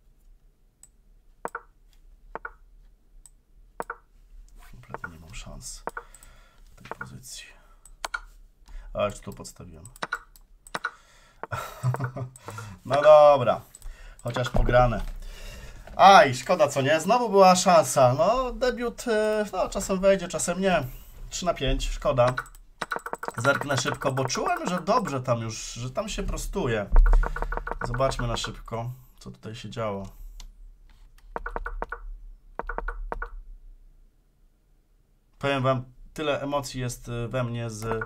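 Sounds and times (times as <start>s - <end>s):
sharp computer clicks: 0.8s - 1.7s, 2.3s - 2.6s, 3.2s - 4.1s, 4.9s - 5.2s, 5.8s - 6.3s, 6.9s - 7.2s, 7.8s - 8.3s, 9.1s - 13.1s, 13.7s - 14.6s, 22.2s - 25.2s, 27.0s - 28.7s, 31.3s - 33.4s, 37.8s - 38.0s.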